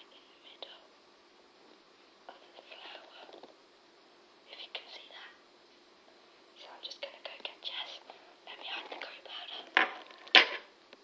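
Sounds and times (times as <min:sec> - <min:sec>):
soft whispering: 0:00.0 - 0:01.0, 0:02.3 - 0:03.6, 0:04.4 - 0:05.4, 0:06.6 - 0:09.8.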